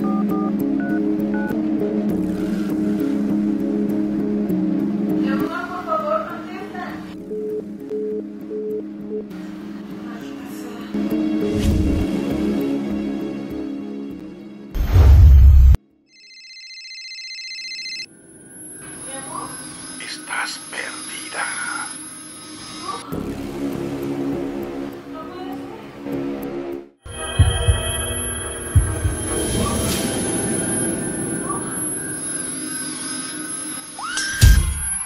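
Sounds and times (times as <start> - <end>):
phone ringing electronically: 16.1 - 18.1.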